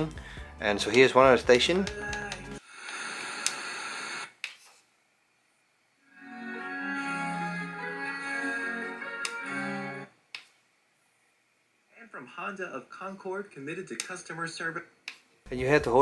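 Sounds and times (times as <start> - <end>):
radio music through a speaker: 0.7 - 4.3.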